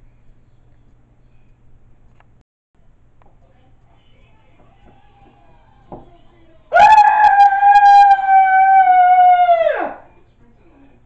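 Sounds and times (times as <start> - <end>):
person screaming high-pitched: 6.8 - 10.0.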